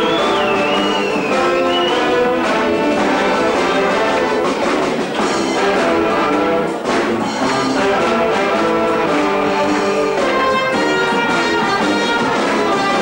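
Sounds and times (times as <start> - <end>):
brass band playing carnival music: 0.0 - 13.0.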